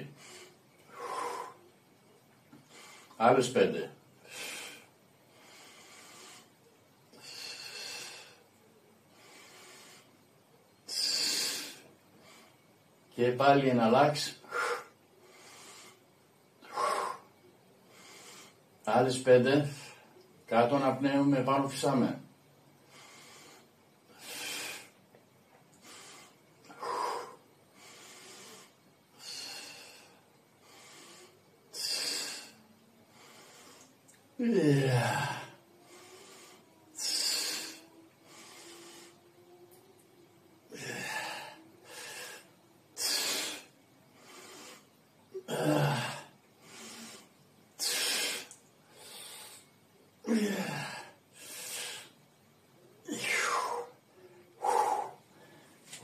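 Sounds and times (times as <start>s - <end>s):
man breathing hard: 0.0s - 1.8s, 2.5s - 3.2s, 4.2s - 10.3s, 14.4s - 18.8s, 22.8s - 25.1s, 25.7s - 39.6s, 40.6s - 52.2s, 53.0s - 56.0s.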